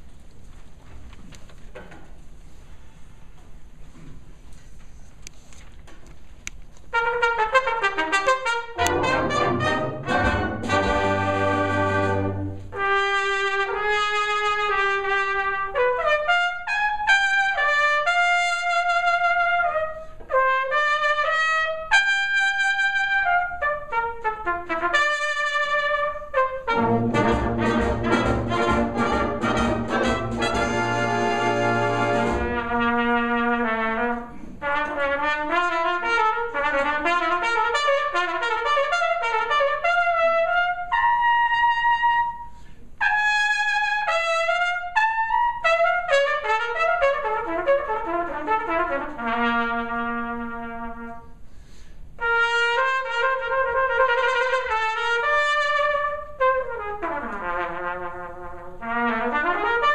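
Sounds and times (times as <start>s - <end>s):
brass band holding a chord: 7.0s - 41.2s.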